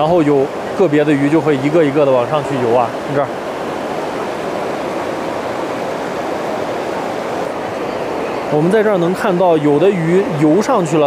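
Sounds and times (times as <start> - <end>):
river water rushing: 0.0 - 11.0.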